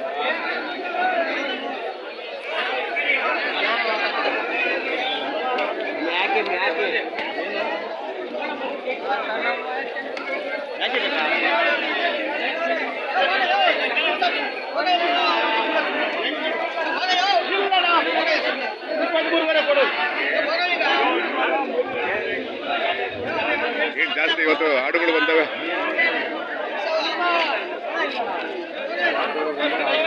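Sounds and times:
men talking in a crowd: 0.0s - 30.0s.

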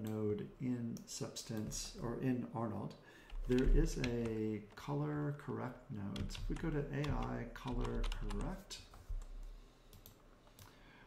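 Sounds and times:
computer mouse and keyboard clicks: 3.3s - 4.9s.

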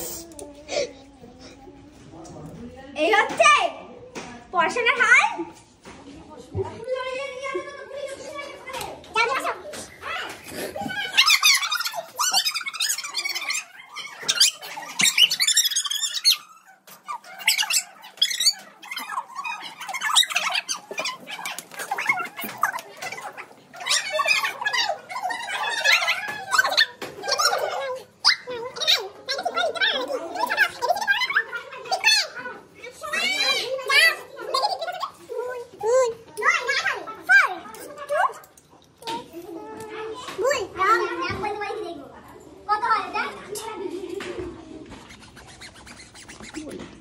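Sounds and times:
children squealing and giggling: 6.8s - 41.5s, 43.1s - 47.0s.

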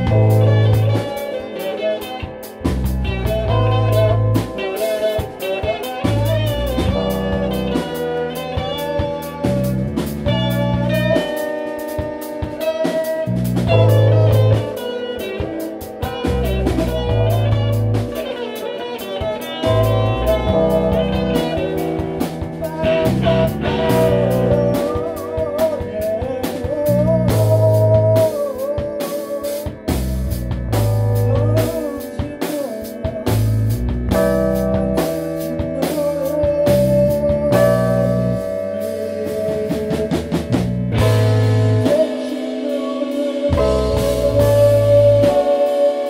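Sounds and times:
deep electronic bass: 0.0s - 1.1s, 2.6s - 4.6s, 6.0s - 7.9s, 8.6s - 11.2s, 13.3s - 14.8s, 16.1s - 18.2s, 19.7s - 28.3s, 29.9s - 32.0s, 33.2s - 42.0s, 43.6s - 45.4s
drum kit playing: 0.0s - 46.0s
psychedelic electric guitar riff: 0.0s - 46.0s.

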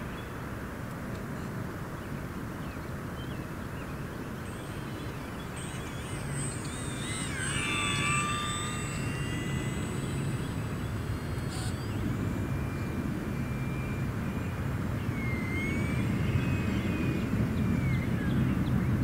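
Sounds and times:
rc plane motor whine: 3.9s - 19.0s.

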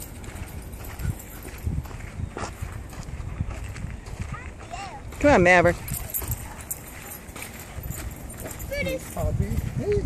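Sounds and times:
footsteps on sandy path: 0.0s - 10.0s.

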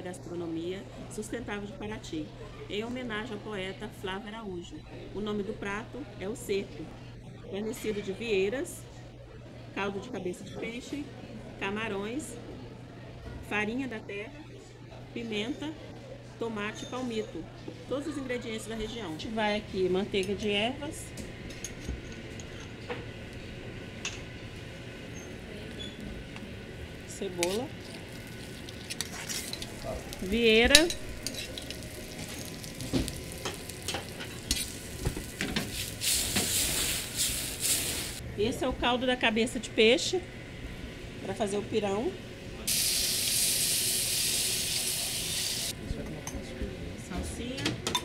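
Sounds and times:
kitchen stove humming: 18.8s - 46.4s
food sizzling in a pan: 27.4s - 38.2s, 42.7s - 45.7s.

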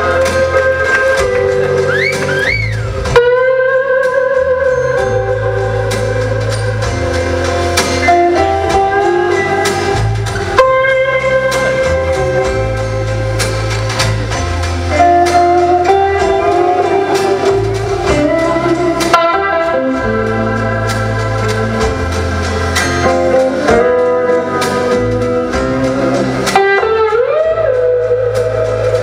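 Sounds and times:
electric guitar slow melody: 0.0s - 29.0s
steady bass line: 0.0s - 29.0s.

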